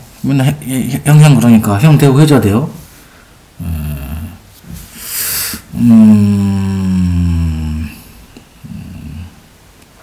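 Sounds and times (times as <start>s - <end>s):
man humming: 3.6s - 4.4s, 5.2s - 9.4s
short low vocal sound: 3.6s - 4.8s, 5.5s - 9.5s.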